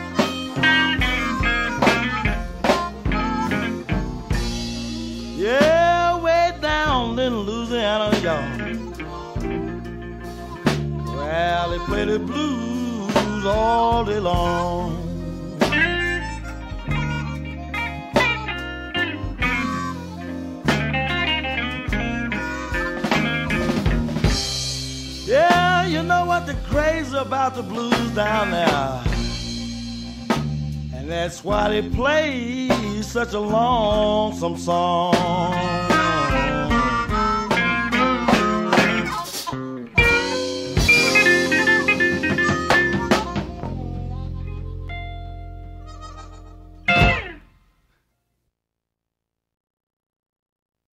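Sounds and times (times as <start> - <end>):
sharp drum accent: 0.0 - 7.3, 20.6 - 33.0, 35.2 - 43.8, 46.9 - 47.4
electric guitar lead with bends: 0.0 - 32.7, 34.9 - 47.6
electric blues band: 0.0 - 47.5
struck held guitar chord: 46.8 - 47.5.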